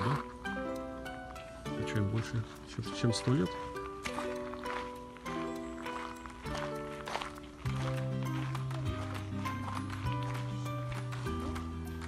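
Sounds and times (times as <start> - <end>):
background music with chords: 0.0 - 12.0.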